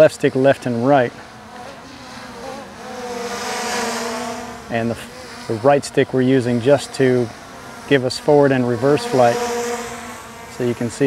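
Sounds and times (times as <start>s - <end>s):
drone propellers buzzing: 0.0s - 11.0s.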